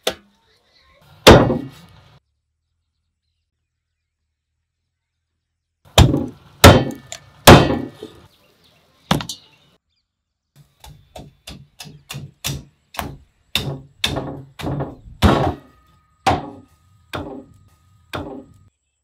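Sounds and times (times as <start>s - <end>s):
cleaver chopping on wooden block: 10.8s - 15.7s.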